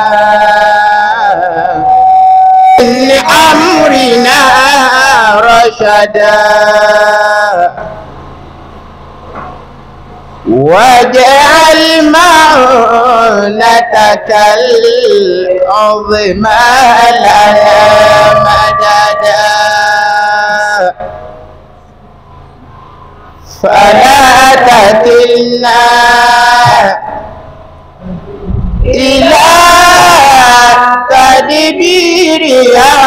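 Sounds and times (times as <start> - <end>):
low steady hum: 0.0 - 33.0
man chanting long note: 15.3 - 21.2
echo of male group chant: 16.4 - 21.0, 23.6 - 27.2, 28.8 - 33.0.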